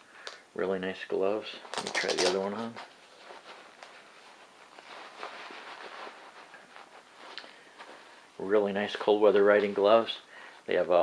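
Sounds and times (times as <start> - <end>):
glove rustling and scuffing: 1.7 - 10.1.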